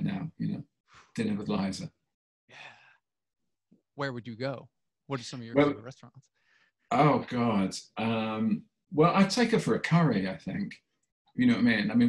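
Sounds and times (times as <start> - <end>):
man saying yeah softly: 4.2 - 6.1.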